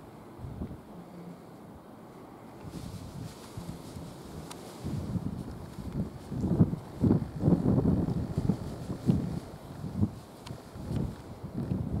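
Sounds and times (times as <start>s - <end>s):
wind buffeting microphone: 0.4s - 0.9s, 2.6s - 12.0s.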